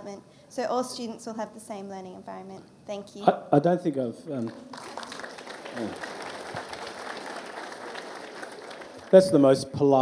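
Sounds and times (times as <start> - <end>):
audience applauding: 4.4 - 9.6.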